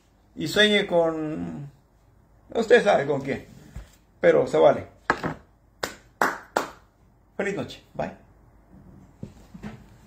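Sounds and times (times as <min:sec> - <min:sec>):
sharp hand claps: 0:05.8 - 0:06.9.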